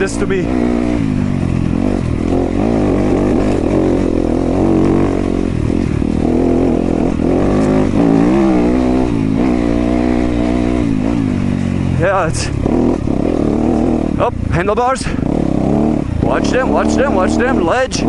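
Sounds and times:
dirt bike engine revving: 0:00.0 - 0:18.0.

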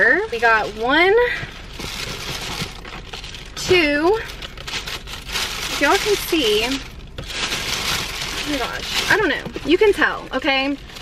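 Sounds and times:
plastic bag rustling: 0:00.0 - 0:11.0.

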